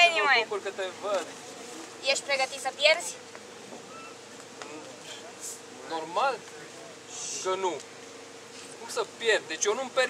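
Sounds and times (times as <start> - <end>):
faint background noise: 0.0 - 10.0
steady buzzing hum: 0.0 - 10.0.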